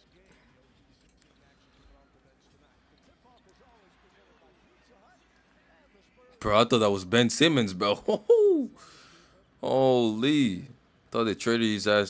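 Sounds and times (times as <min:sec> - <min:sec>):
faint basketball broadcast audio: 0:00.0 - 0:12.0.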